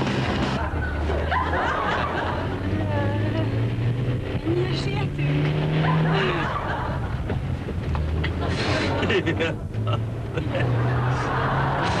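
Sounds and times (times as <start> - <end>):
car engine revving through gears: 0.0 - 12.0.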